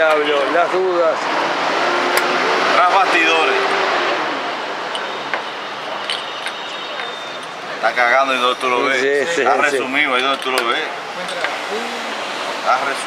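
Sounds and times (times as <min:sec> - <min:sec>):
street traffic noise: 0:00.0 - 0:13.0
vehicle passing by: 0:00.4 - 0:04.9, 0:11.1 - 0:13.0.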